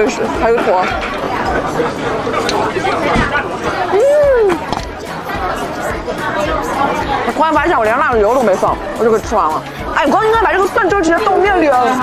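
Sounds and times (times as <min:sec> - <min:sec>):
diners chattering: 0:00.0 - 0:12.0.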